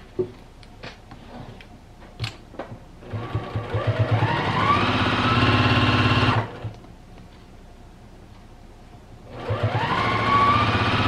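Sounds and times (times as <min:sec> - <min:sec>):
sewing machine sewing: 0:03.0 - 0:06.7, 0:09.3 - 0:11.0.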